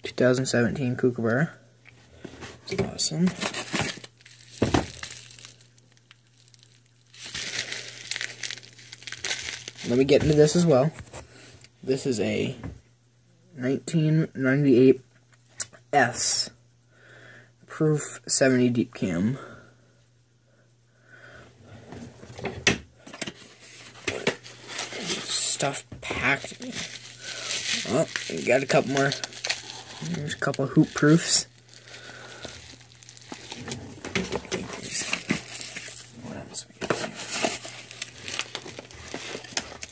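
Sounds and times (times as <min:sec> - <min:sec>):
plastic wrap crinkling: 0:02.3 - 0:10.8, 0:23.3 - 0:39.9.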